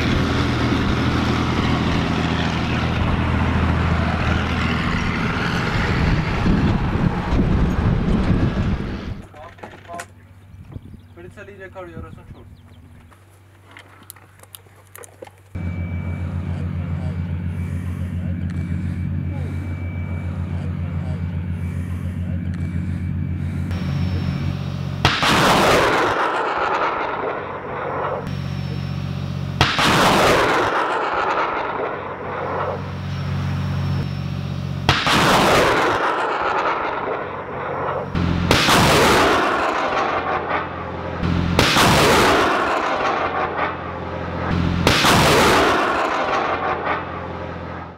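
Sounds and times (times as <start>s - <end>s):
rocket launch blasts with rushing roar: 0.0s - 9.2s, 23.7s - 28.3s, 29.5s - 34.1s, 34.8s - 47.9s
steady low drone: 0.0s - 9.3s, 15.5s - 47.9s.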